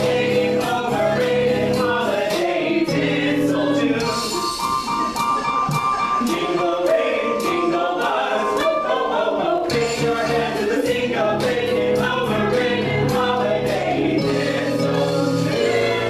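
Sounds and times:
mixed voices singing in harmony: 0.0s - 5.5s, 6.1s - 16.0s
keyboard accompaniment: 0.0s - 16.0s.

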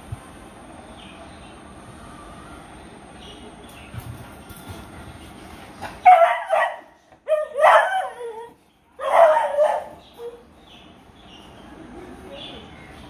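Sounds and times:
dog barking: 6.0s - 8.2s, 9.0s - 10.4s.

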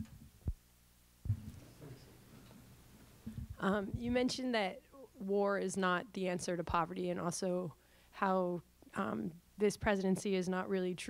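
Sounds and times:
low thumps on microphone: 1.2s - 1.6s, 3.2s - 4.3s.

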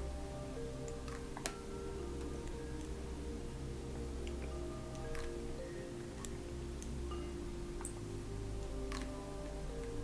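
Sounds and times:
soft slow spa music: 0.0s - 10.0s.

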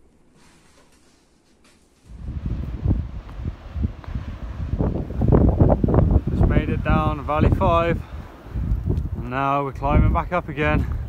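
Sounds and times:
wind buffeting microphone: 2.1s - 11.0s.

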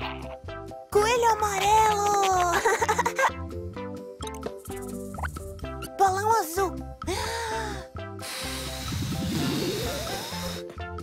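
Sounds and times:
bouncy children's music: 0.0s - 11.0s
balloon inflating hiss rising: 8.2s - 10.8s.

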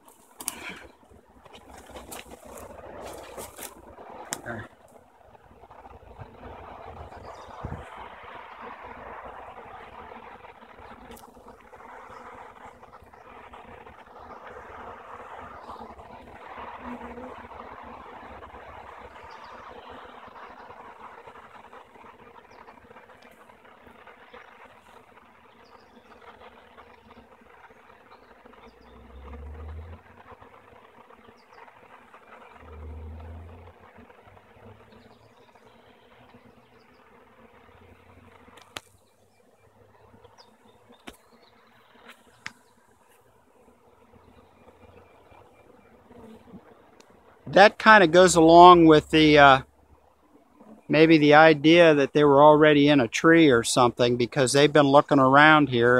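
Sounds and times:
honey bees buzzing: 0.0s - 55.9s.

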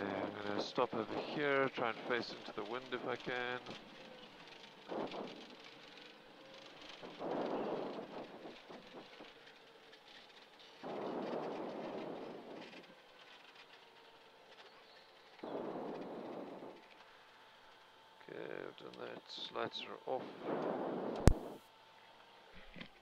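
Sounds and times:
light aircraft engine idling: 0.0s - 20.1s
air gusts over microphone: 6.8s - 9.4s, 10.8s - 12.9s, 15.4s - 16.9s, 20.2s - 21.6s.

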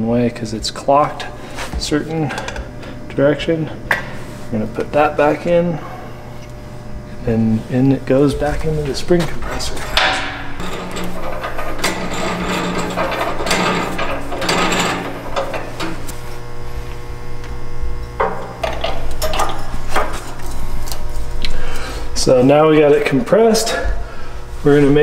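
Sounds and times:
steady low hum: 0.0s - 25.0s.

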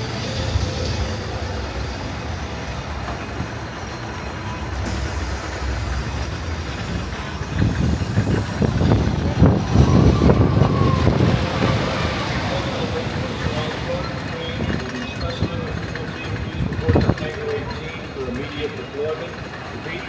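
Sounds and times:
low rumble: 0.0s - 18.1s
distant crowd noise: 0.0s - 20.0s.

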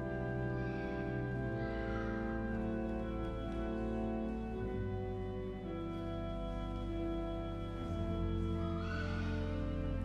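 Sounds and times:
pipe organ chords: 0.0s - 10.0s.

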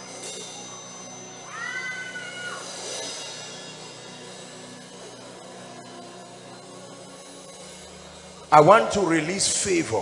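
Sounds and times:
soft keyboard music: 2.3s - 10.0s.

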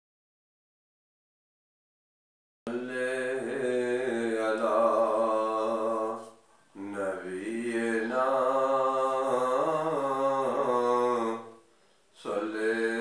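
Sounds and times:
man chanting in long held notes: 2.7s - 11.6s, 12.2s - 13.0s.

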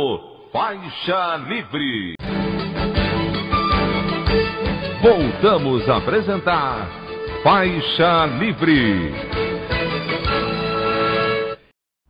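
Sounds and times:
radio jingle music: 0.7s - 11.4s.

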